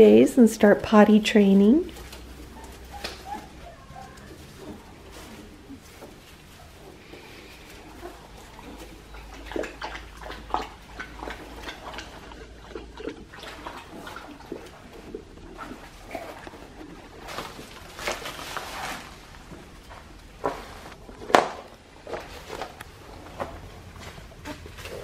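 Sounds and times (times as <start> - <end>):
wood-shaving bedding rustling: 1.9 - 9.1, 15.8 - 21.4.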